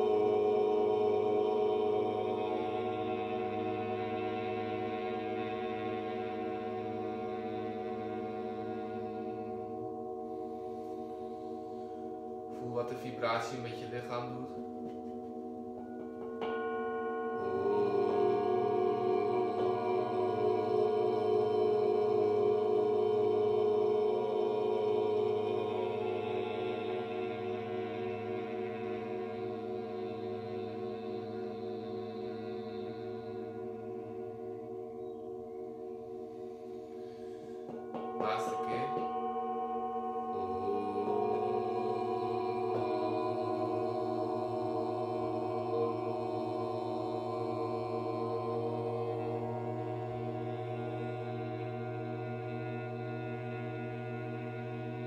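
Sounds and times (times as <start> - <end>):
metal singing bowls ringing: 0.0 - 55.0.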